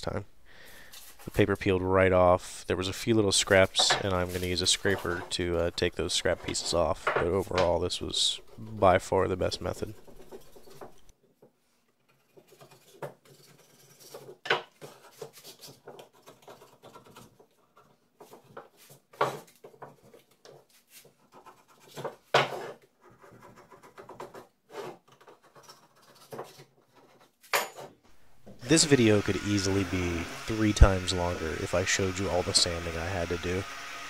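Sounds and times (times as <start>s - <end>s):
scraper scratching wood: 9.4s - 11.1s, 12.1s - 17.6s, 18.2s - 27.3s.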